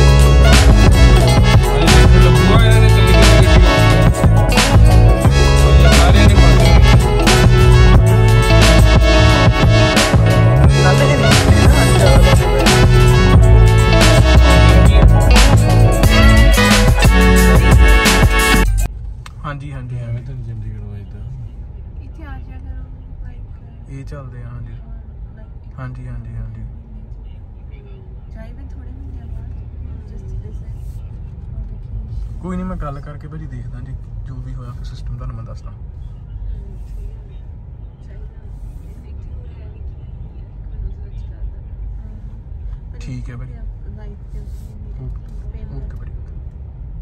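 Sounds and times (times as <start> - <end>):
car engine and road rumble: 0.0 - 47.0
person's voice: 0.7 - 4.2, 5.6 - 7.2, 10.6 - 13.3.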